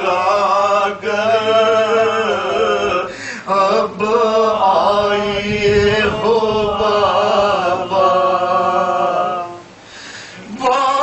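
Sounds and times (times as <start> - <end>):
man chanting through a microphone: 0.0 - 9.6.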